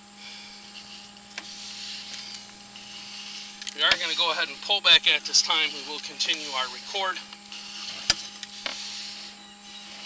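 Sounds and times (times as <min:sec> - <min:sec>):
electrical hum: 0:00.0 - 0:10.0
cable rubbing hiss: 0:00.2 - 0:10.0.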